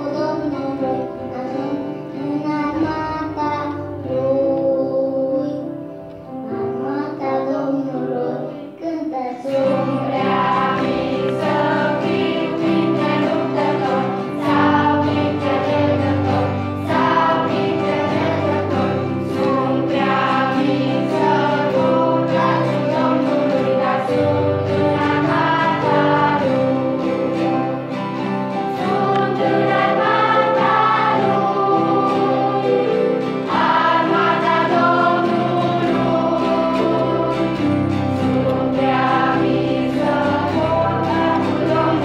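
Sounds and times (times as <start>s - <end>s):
children's choir singing: 0.0s - 42.0s
guitar accompaniment: 0.0s - 42.0s.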